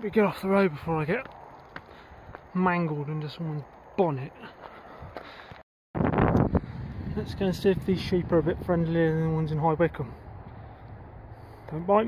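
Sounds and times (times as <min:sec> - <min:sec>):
wind buffeting microphone: 0:06.0 - 0:12.0.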